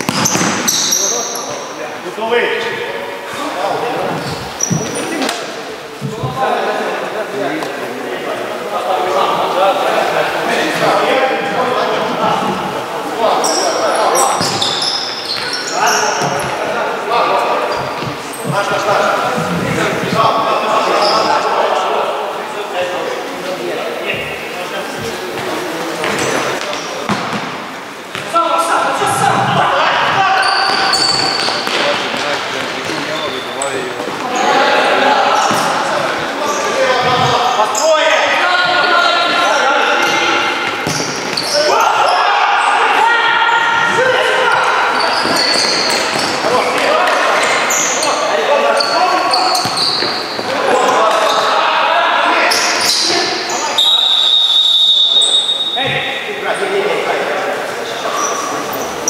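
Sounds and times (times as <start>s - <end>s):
players shouting: 28.2s - 32.1s, 34.2s - 56.4s
long whistle blast: 53.8s - 55.8s.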